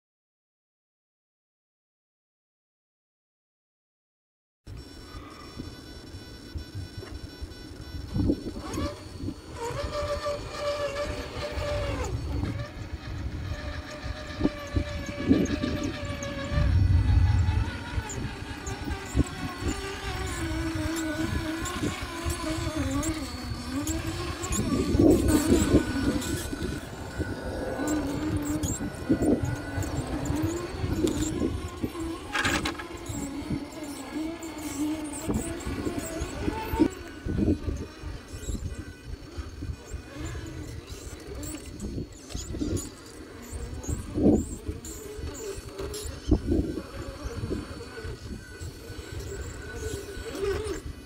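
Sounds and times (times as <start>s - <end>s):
electric motor and gears whining: 4.7s - 51.0s
wind rumble on microphone: 6.6s - 51.0s.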